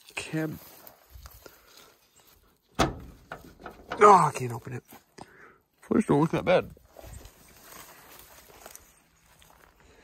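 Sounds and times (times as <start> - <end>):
door latch metallic clunk: 2.8 - 4.0.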